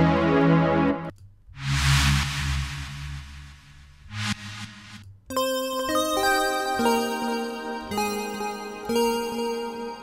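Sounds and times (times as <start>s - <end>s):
synthesizer keys chord: 0.0s - 1.1s, 5.3s - 10.0s.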